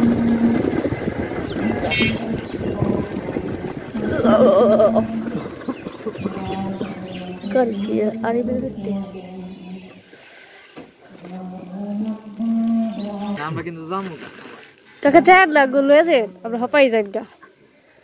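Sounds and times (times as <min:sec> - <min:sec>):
motorcycle engine hum: 0:00.0 - 0:10.2
wind and road noise: 0:00.0 - 0:11.0.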